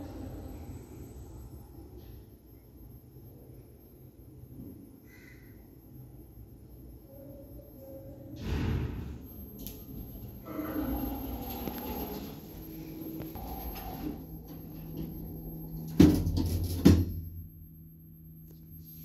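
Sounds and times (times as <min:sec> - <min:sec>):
lift humming: 0:09.1 - 0:17.8.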